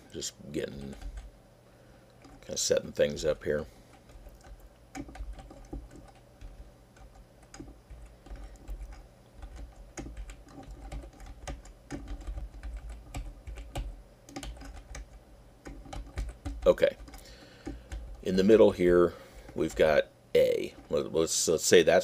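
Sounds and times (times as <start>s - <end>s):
computer keyboard typing: 0.6s - 1.3s, 2.2s - 20.0s.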